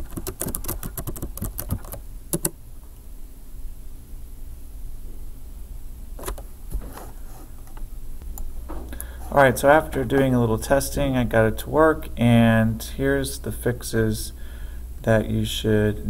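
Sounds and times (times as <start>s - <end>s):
computer keyboard typing: 0.0s - 2.6s.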